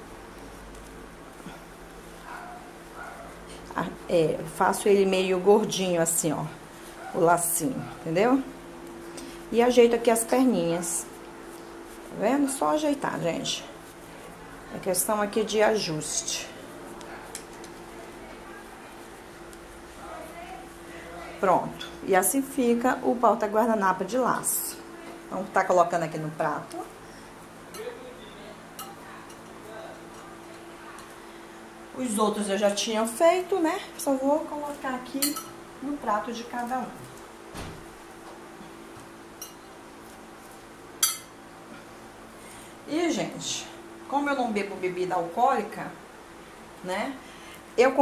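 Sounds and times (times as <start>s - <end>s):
faint steady hum: 0.0s - 48.0s
woman's voice: 3.7s - 8.6s, 9.5s - 11.1s, 12.1s - 13.8s, 14.7s - 16.7s, 20.0s - 27.0s, 31.9s - 37.1s, 42.9s - 46.0s, 46.8s - 48.0s.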